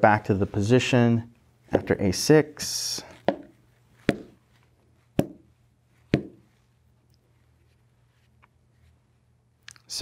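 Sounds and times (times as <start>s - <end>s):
chess pieces knocking on board: 3.2s - 4.4s, 5.2s - 5.4s, 6.1s - 6.4s.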